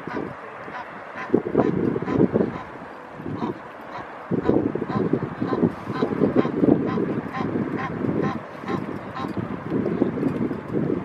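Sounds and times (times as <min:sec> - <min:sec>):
geese calling: 0:00.0 - 0:09.4.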